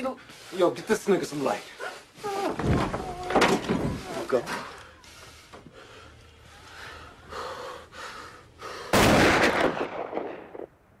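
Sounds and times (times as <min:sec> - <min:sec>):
loud gunshot: 0:09.0 - 0:10.7.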